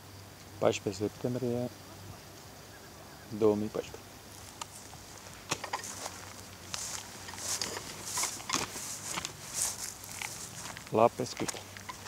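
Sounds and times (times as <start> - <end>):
man speaking: 0.6 - 2.2, 3.3 - 4.0, 10.9 - 11.6
footsteps through dry grass: 4.2 - 12.0.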